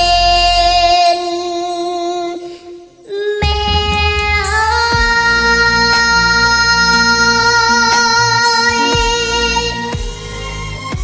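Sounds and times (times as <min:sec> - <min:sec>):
girl singing: 0:00.0 - 0:09.9
backing track with bass and beat: 0:03.4 - 0:07.3.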